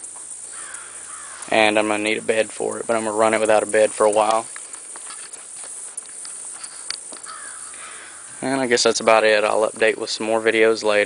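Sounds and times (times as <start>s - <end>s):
insects chirring: 0.0s - 11.0s
faint clicks: 0.2s - 1.5s.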